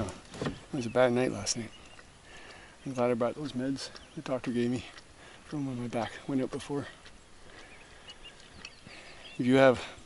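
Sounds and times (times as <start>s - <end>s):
distant bird chirping: 0.0s - 10.0s.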